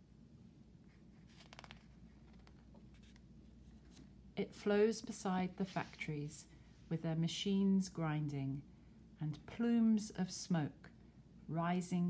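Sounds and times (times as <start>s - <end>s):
soft clicks and rustles: 1.0s - 4.1s.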